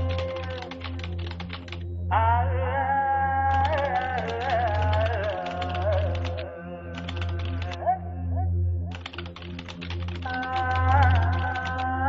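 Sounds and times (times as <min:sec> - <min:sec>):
keyboard key clicks: 0:00.0 - 0:01.8, 0:03.5 - 0:06.4, 0:08.9 - 0:11.8
background music with drone: 0:00.0 - 0:12.0.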